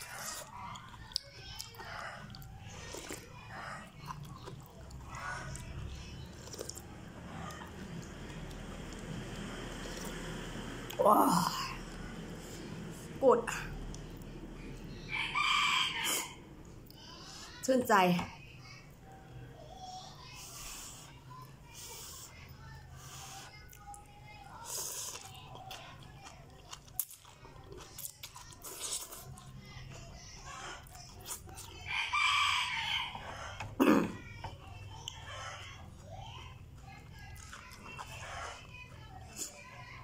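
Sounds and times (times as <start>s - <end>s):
rooster crowing: 15.1s - 16.4s, 31.9s - 33.5s.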